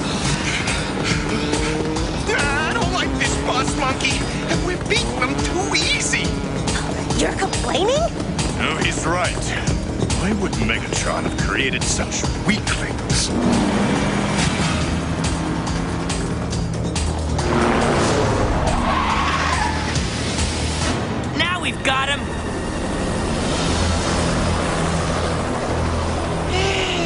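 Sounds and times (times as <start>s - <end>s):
cartoon music with low drones: 0.0s - 27.0s.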